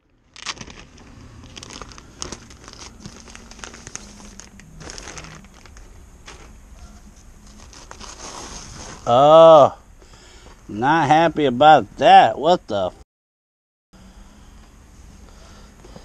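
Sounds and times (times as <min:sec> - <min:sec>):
plastic packaging crinkling: 0:00.1 - 0:06.6, 0:07.4 - 0:09.1.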